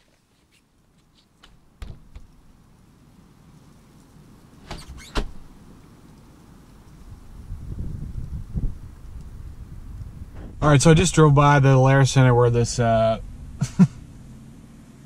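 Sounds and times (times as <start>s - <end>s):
low rumble: 7.4s - 14.8s.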